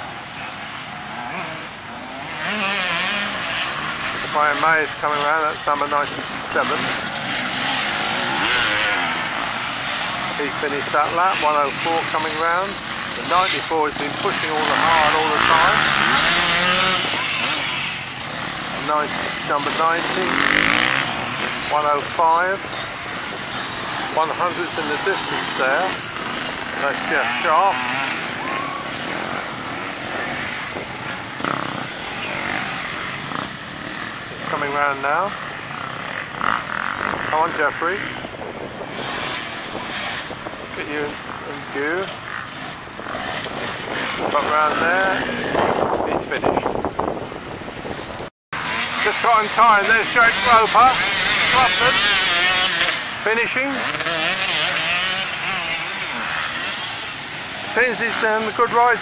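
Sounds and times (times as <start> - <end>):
distant motorcycle engines droning: 0.0 - 59.0.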